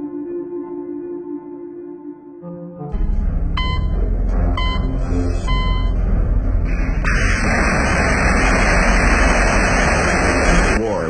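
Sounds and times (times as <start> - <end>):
short electronic beeps: 3.6 - 6.0.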